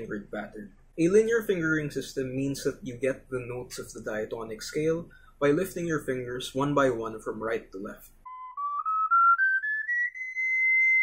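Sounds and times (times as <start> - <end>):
ocarina playing rising scale: 8.2 - 11.0.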